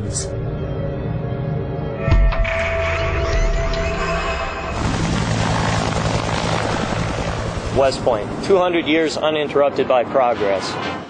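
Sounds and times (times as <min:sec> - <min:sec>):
turbine whine: 0:00.0 - 0:11.0
helicopter flying past: 0:03.9 - 0:11.0.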